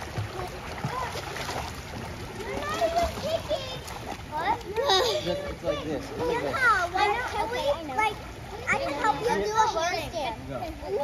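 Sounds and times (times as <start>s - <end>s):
pool water splashing: 0.0s - 11.0s.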